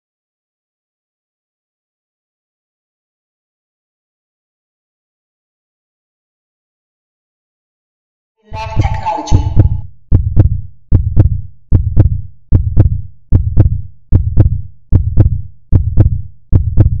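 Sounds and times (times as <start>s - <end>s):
heartbeat double thump: 8.6s - 17.0s.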